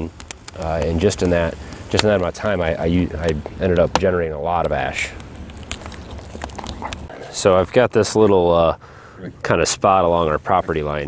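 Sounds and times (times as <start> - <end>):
wood fire hissing: 0.0 - 7.6, 8.4 - 11.0
fire crackling and popping: 0.0 - 11.0.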